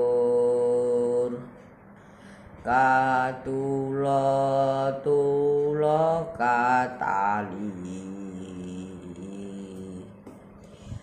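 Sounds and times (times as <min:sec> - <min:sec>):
boy singing unaccompanied: 0:02.6 - 0:10.2.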